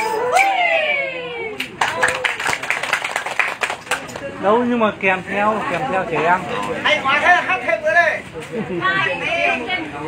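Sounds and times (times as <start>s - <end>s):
small group clapping: 1.5s - 4.4s.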